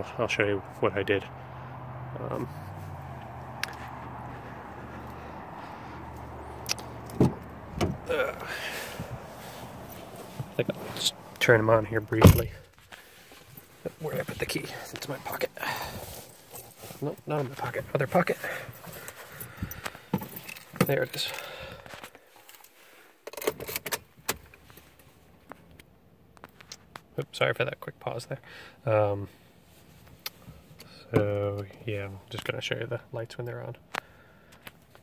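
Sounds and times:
cloth rustling: 8.1s - 11.7s.

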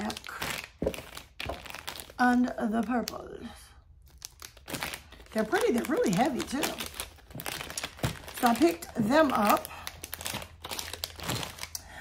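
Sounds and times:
packaging crinkling: 0.0s - 2.2s, 4.0s - 11.8s.

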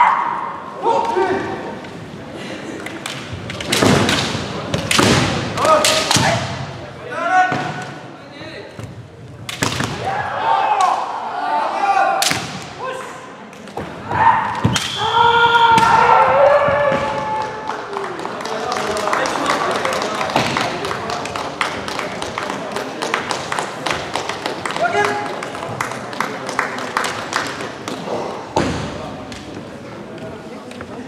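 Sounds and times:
bamboo sword strikes: 3.6s - 6.6s, 12.2s - 12.7s.

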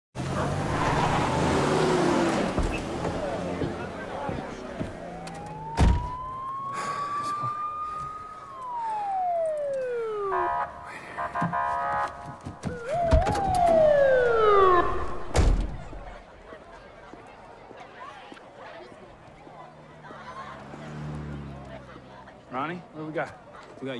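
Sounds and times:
busy street noise: 0.2s - 23.9s
police siren wailing: 0.4s - 2.5s, 3.2s - 16.2s
multi-tone siren: 4.9s - 16.1s.

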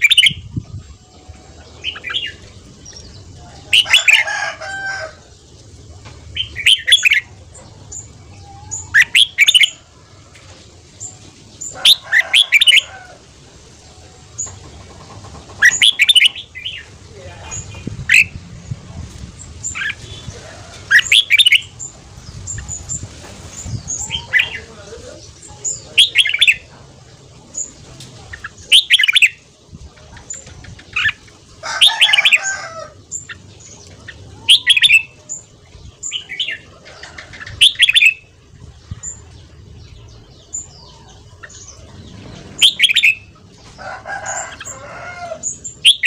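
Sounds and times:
bird chirping: 0.0s - 9.8s, 13.8s - 46.0s.

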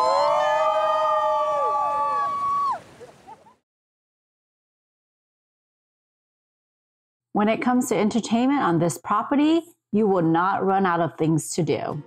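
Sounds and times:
group cheering woooo: 0.0s - 2.9s.

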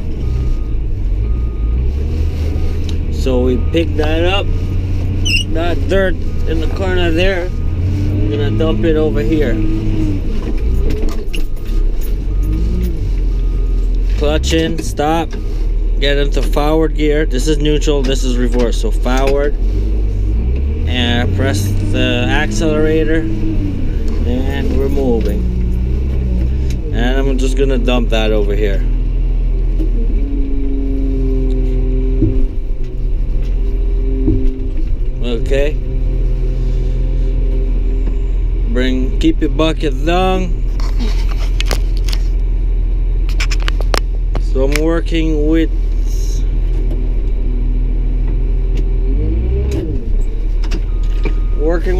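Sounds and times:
diesel engine running: 0.0s - 51.9s
rattling and clicking in cab: 8.1s - 13.0s, 16.3s - 28.5s, 31.3s - 35.9s, 49.6s - 51.9s.

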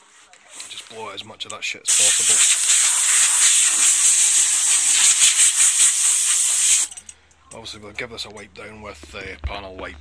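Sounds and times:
compressed-air gun hissing: 1.9s - 6.9s.

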